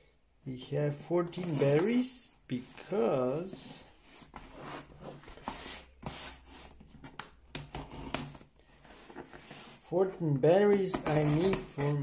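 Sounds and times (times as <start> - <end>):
hands handling cardboard box: 1.3 - 12.0.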